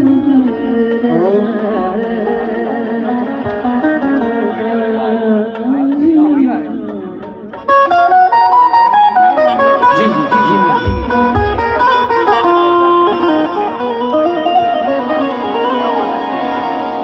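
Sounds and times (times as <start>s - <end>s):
person singing: 0.0s - 7.3s, 9.8s - 12.8s
melodic instrument stepped notes: 7.7s - 17.0s
low thumps: 10.7s - 13.3s.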